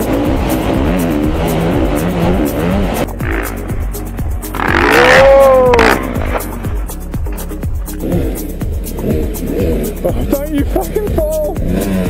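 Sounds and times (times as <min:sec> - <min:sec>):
loud rising and falling tone: 0:00.0 - 0:07.2
background music with beat: 0:00.0 - 0:12.0.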